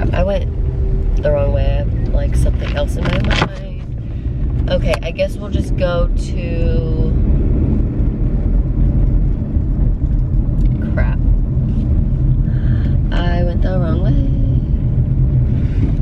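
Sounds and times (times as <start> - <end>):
car cabin road rumble: 0.0 - 16.0.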